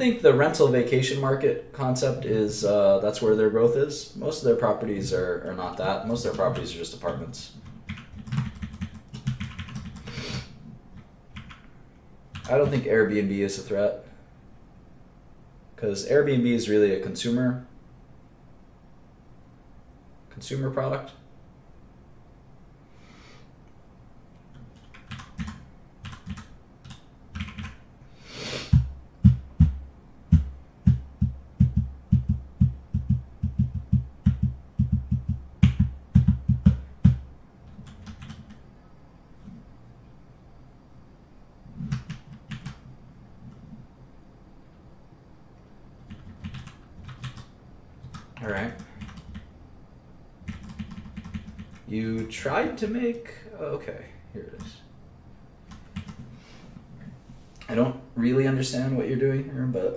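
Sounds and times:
keyboard typing: 0:06.1 - 0:10.2, 0:10.9 - 0:11.7, 0:12.3 - 0:12.8, 0:24.4 - 0:27.8, 0:28.7 - 0:38.6, 0:41.8 - 0:42.9, 0:46.0 - 0:49.5, 0:50.4 - 0:52.3, 0:55.7 - 0:56.3.

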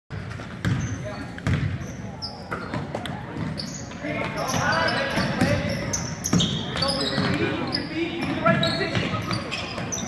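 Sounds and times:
basketball bouncing on hardwood floor: 0:00.2 - 0:01.8
voices echoing in a hall: 0:00.6 - 0:10.0.

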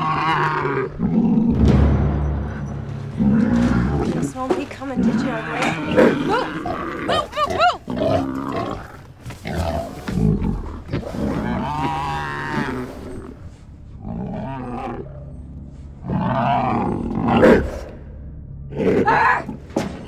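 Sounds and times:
creature growls grunts and squeals: 0:00.0 - 0:01.5, 0:05.6 - 0:12.9.

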